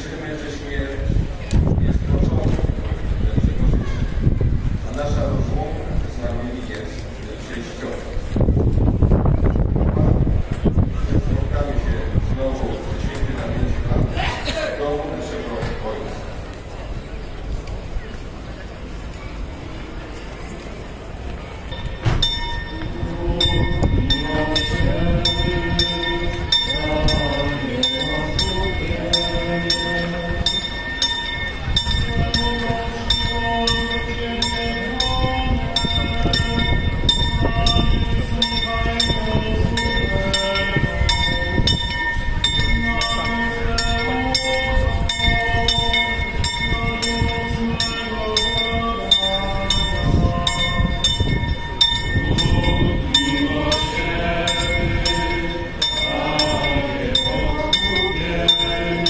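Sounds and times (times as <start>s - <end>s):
church bells tolling: 21.4s - 59.0s
crowd singing a slow hymn: 21.7s - 59.0s.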